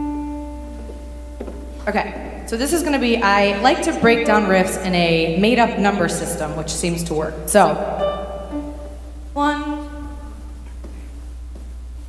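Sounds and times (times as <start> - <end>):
piano note: 0.0 - 10.5.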